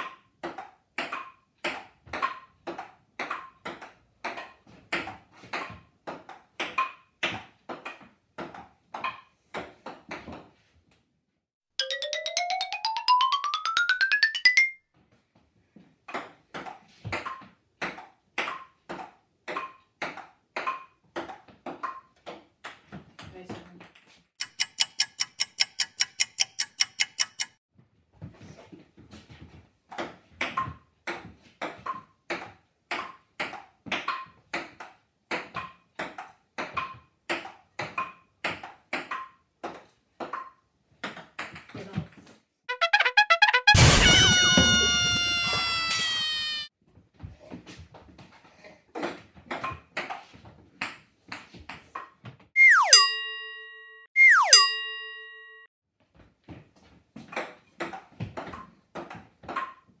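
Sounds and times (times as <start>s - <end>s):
short downward sliding tones: 11.8s - 14.8s, 42.7s - 46.7s, 52.6s - 53.4s, 54.2s - 55.2s
sustained falling tone: 52.6s - 53.1s, 54.2s - 54.7s.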